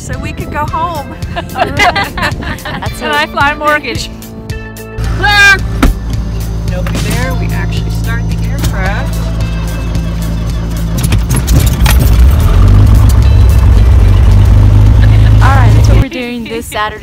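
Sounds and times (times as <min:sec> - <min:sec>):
piston engine cranking and running: 0:10.2 - 0:16.0.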